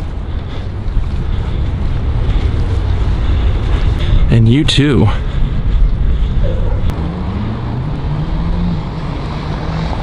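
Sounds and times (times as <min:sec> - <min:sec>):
wind on microphone: 0:00.0 - 0:07.0.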